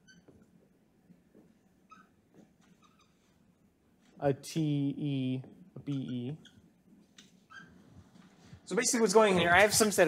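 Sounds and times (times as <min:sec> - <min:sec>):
marker squeaking on whiteboard: 0:00.0 - 0:00.7, 0:01.3 - 0:04.1, 0:05.8 - 0:08.6.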